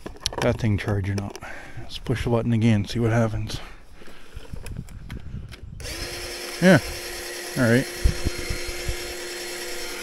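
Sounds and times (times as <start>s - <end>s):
electric mower motor humming: 5.8s - 10.0s.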